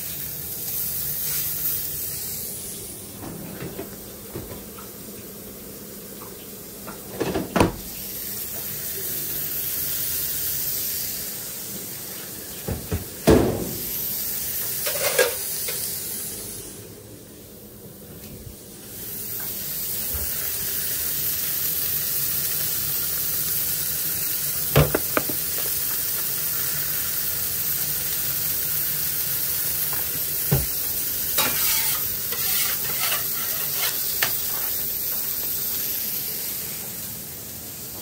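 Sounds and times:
burger patties sizzling on griddle: 0:00.0 - 0:03.1, 0:03.9 - 0:17.0, 0:18.6 - 0:38.0.

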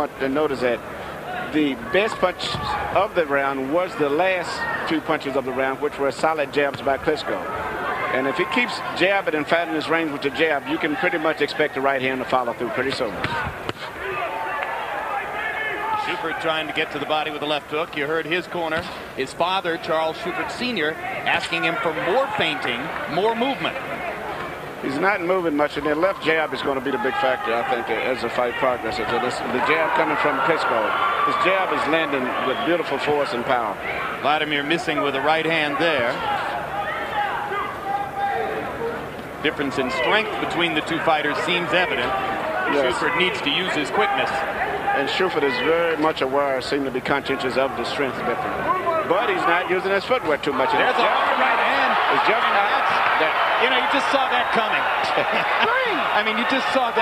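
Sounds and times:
arena crowd murmur: 0:00.0 - 0:57.0
broadcast commentary: 0:00.0 - 0:57.0
voices calling out: 0:18.7 - 0:57.0.

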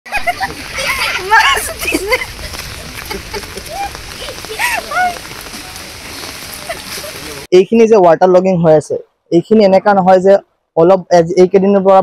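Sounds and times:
rain on a wet road: 0:00.2 - 0:07.5.

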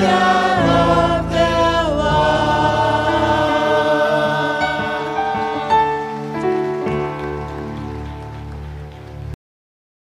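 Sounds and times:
group singing into microphones: 0:00.0 - 0:06.5.

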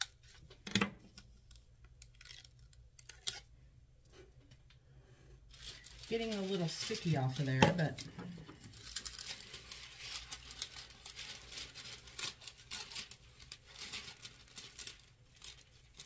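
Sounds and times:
foil crinkling: 0:05.5 - 0:16.0.

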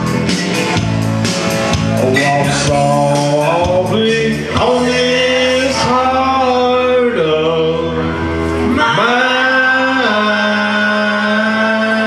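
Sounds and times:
man singing karaoke: 0:01.6 - 0:12.0.

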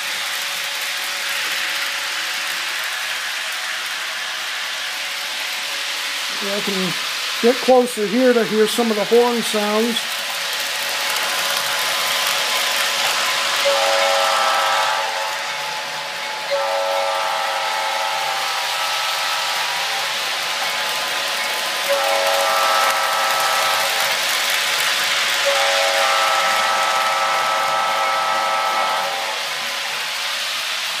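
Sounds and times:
toy trains whirring on track: 0:00.0 - 0:31.0
toy train electronic horn: 0:13.6 - 0:19.9, 0:21.8 - 0:24.2, 0:25.4 - 0:29.4.

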